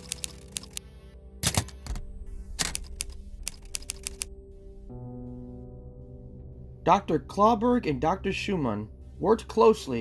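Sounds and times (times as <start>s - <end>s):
typewriter keys clacking: 0.0s - 0.8s, 1.4s - 2.0s, 2.6s - 4.3s
dark background music: 0.0s - 10.0s.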